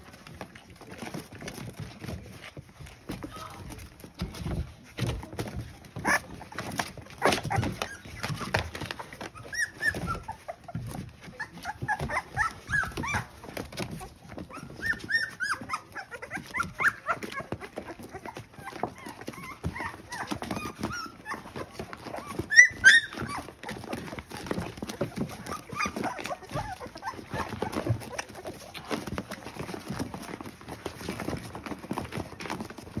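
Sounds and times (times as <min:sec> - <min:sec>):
puppies whimpering and squeaking: 0:00.0 - 0:33.0
soft rustling and clicks: 0:00.0 - 0:33.0
puppy squeal: 0:07.2 - 0:10.6, 0:11.4 - 0:13.4, 0:14.5 - 0:28.1.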